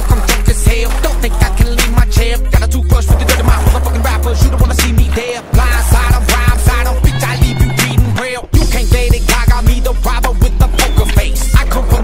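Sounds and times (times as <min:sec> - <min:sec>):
music with drum beat and bass: 0:00.0 - 0:12.0.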